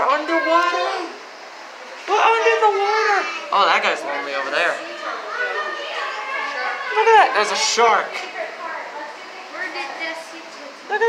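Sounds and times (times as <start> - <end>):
children's voices calling out: 0.0 - 11.0
indistinct chatter: 0.0 - 11.0.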